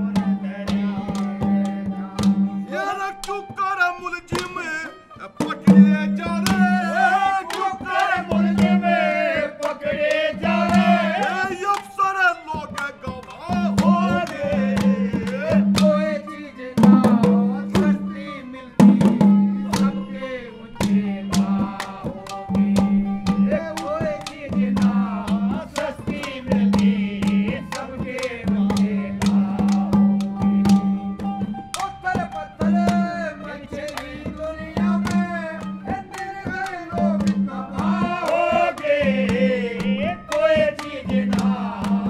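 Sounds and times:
man singing folk song: 0.0s - 30.2s, 31.8s - 42.0s
hand drum beating: 0.0s - 42.0s.

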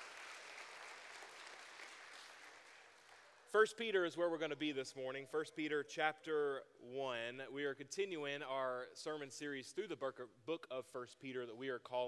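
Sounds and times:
congregation applauding: 0.0s - 3.5s.

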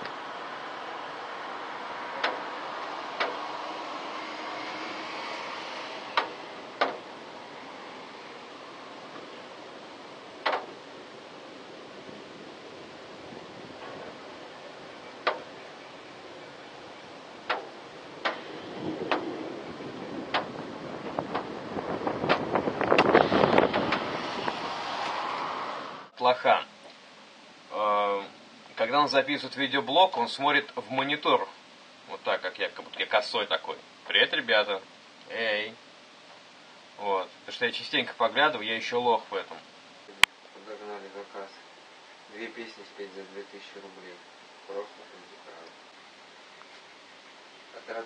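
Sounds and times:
rain falling steadily: 0.0s - 48.0s.

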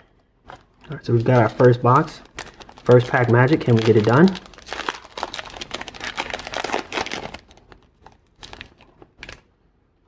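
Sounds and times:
foil wrapper crinkling: 0.4s - 9.5s.

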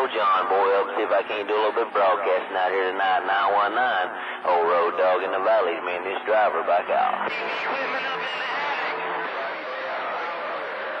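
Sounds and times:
faint voice over radio: 0.0s - 11.0s
radio static hiss: 5.4s - 11.0s.

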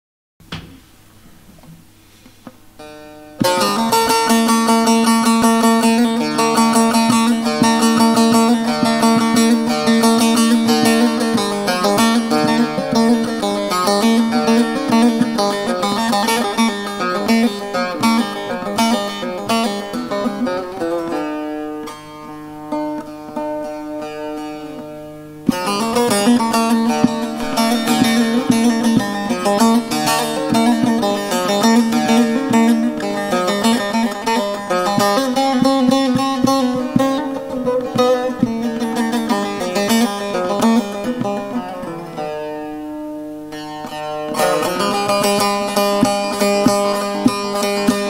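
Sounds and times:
long-necked lute picked notes: 2.5s - 48.0s.

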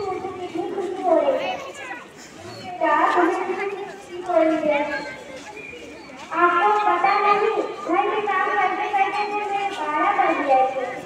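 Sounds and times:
child speaking: 0.0s - 2.1s
children chattering: 0.0s - 11.0s.

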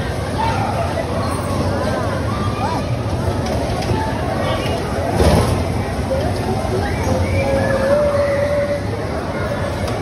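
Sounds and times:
bumper cars rumbling: 0.0s - 10.0s
people chattering: 0.0s - 10.0s.

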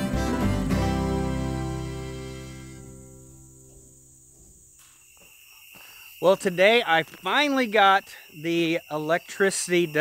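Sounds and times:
strummed acoustic guitar: 0.0s - 4.0s
crickets trilling: 1.8s - 10.0s.

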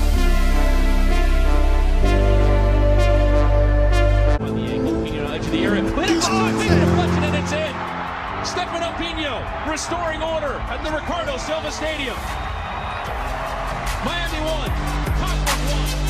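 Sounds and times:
background music: 0.0s - 16.0s
crowd noise: 5.8s - 16.0s.

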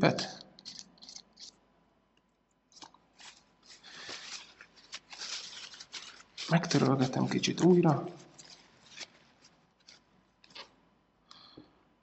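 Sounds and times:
faint handling rustles and clicks: 2.7s - 10.8s.

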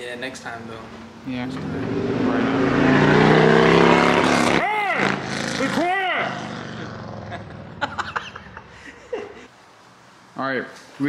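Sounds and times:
car engine revving: 0.5s - 7.9s.

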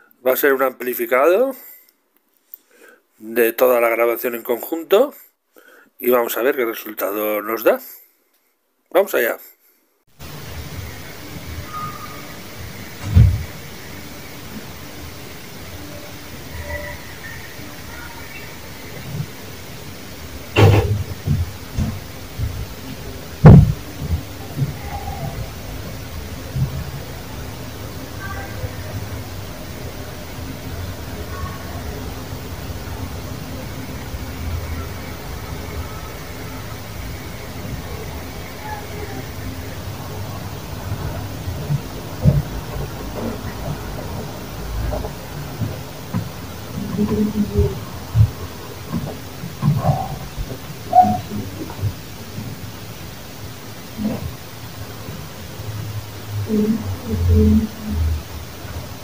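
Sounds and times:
hiss and low rumble: 10.2s - 59.0s
sharp knocks: 20.6s - 22.6s, 23.4s - 24.8s.

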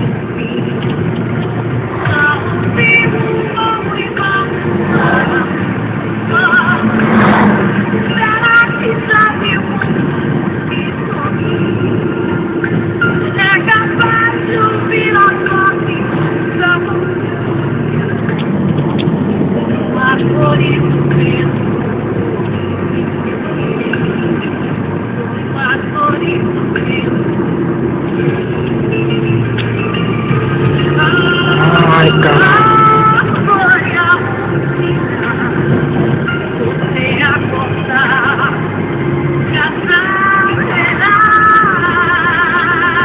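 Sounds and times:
car engine and road noise: 0.0s - 43.0s
music with singing voice: 0.0s - 43.0s.

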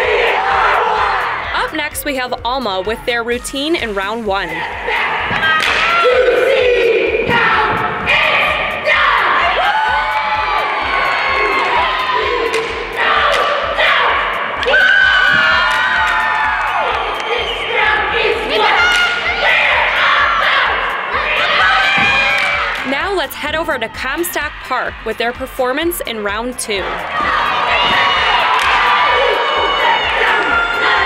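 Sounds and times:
girls shouting a cheer: 0.0s - 1.6s, 4.4s - 22.9s, 26.8s - 31.0s
background music: 0.0s - 31.0s
sharp claps: 5.4s - 6.0s, 12.4s - 13.6s, 27.9s - 29.0s
stomps: 14.6s - 16.2s, 21.9s - 22.8s, 27.2s - 28.9s.

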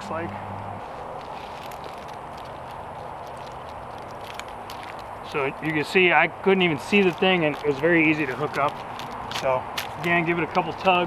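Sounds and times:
steady background hiss: 0.0s - 11.0s
nylon strap rustling: 0.7s - 11.0s.

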